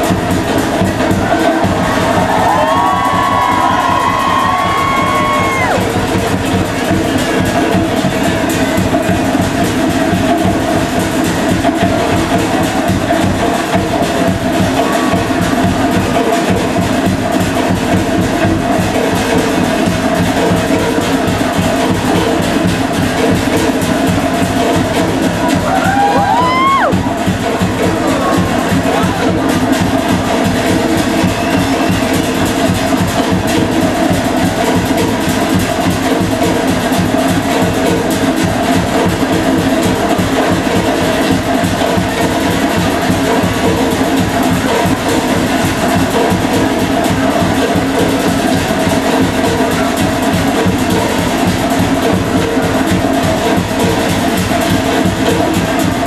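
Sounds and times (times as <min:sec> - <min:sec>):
fast drumming music: 0:00.0 - 0:56.0
rising whoop: 0:01.3 - 0:05.8, 0:25.5 - 0:27.0.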